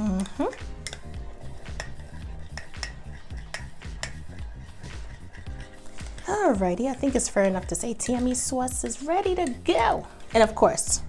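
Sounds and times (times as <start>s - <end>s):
utensil clinking against ceramic bowl: 0.0s - 10.0s
metal utensil stirring thick sauce: 0.0s - 10.3s.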